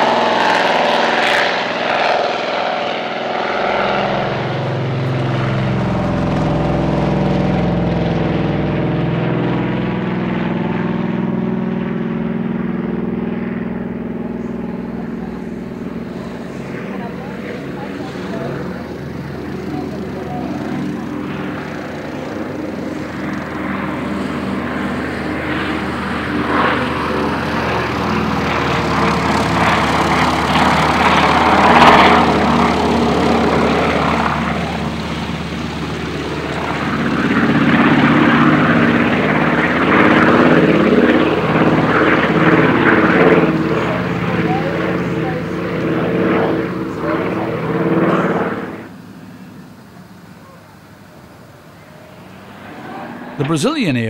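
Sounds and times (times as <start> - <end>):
propeller aircraft engines droning: 0.0 - 54.0.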